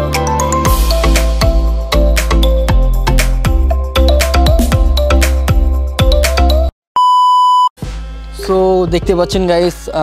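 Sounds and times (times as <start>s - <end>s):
music: 0.0s - 6.7s
test-tone beep: 7.0s - 7.7s
person speaking over music: 8.4s - 10.0s.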